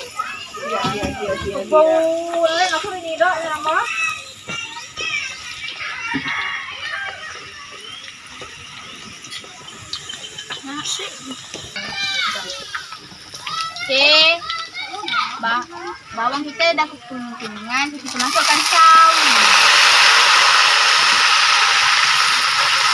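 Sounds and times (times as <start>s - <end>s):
children chattering: 0.0s - 19.8s
food sizzling in hot oil: 0.0s - 22.9s.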